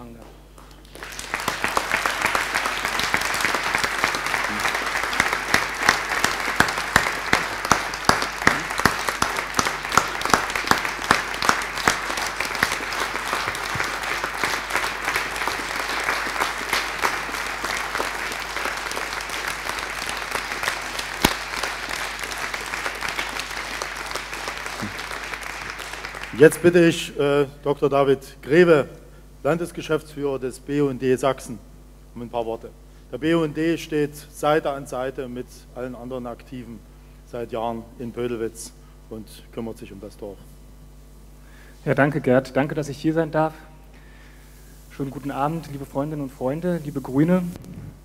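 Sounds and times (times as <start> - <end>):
crowd applauding: 0.6 - 27.1.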